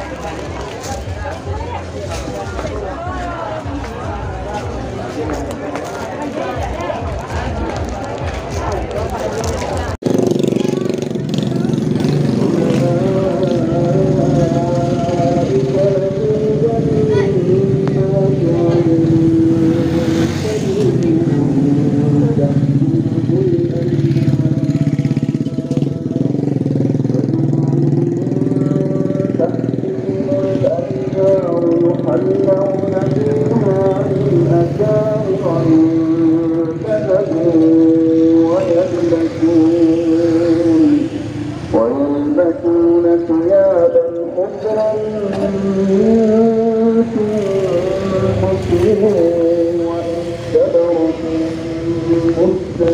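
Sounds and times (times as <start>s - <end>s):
motorcycles and cars passing: 0.0s - 52.9s.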